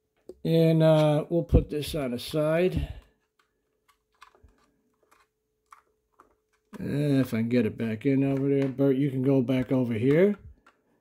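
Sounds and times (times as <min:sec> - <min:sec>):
plastic model clicks and taps: 0:03.1 - 0:06.8, 0:08.3 - 0:08.9, 0:09.5 - 0:11.0.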